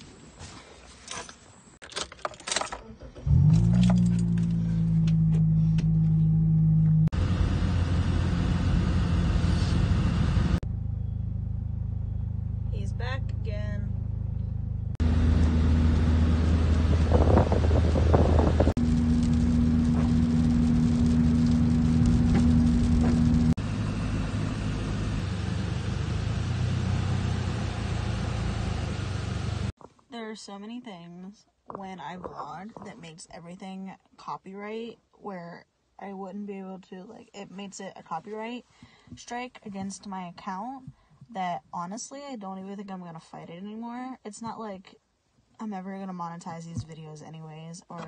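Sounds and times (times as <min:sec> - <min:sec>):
car engine and road noise: 0:03.0 - 0:29.8.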